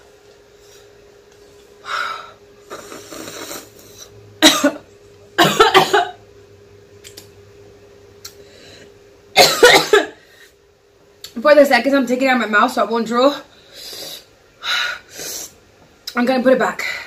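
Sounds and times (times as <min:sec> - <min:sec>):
woman coughing: 0:04.4 - 0:06.2, 0:09.4 - 0:10.2.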